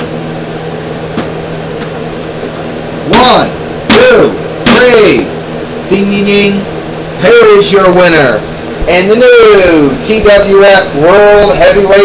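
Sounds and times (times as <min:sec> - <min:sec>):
steady tonal hum: 0:00.0 - 0:12.0.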